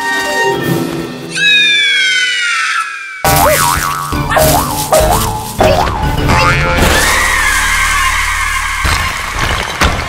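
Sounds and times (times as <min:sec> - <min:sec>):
wobbling boing: 0:05.6 - 0:07.0.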